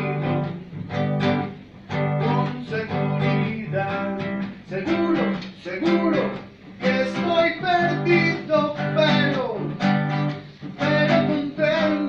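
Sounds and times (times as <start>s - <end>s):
man singing: 0.0s - 1.0s, 1.9s - 12.0s
classical guitar strumming: 0.0s - 12.0s.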